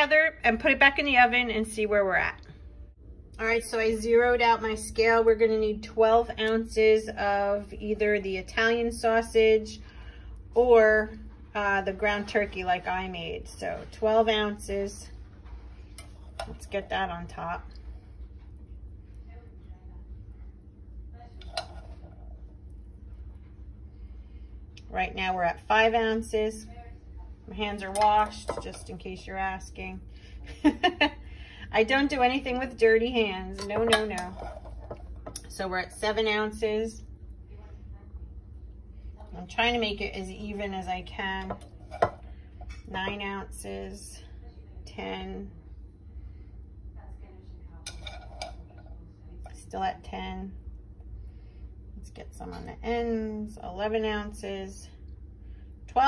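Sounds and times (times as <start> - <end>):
low hum: 0.0 - 56.0.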